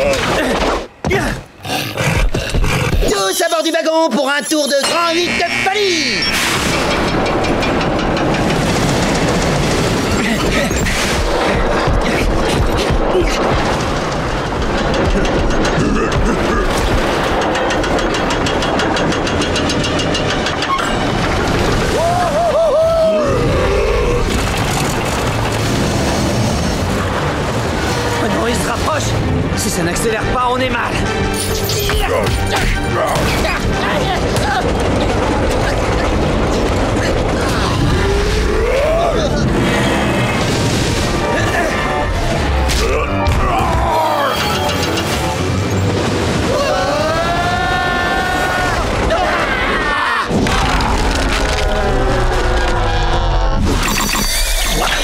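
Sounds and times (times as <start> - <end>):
dramatic music: 4.7 - 55.0
rumble of action sound effects: 5.1 - 30.0, 32.8 - 55.0
cartoon soundtrack music: 28.1 - 36.3, 37.2 - 50.8.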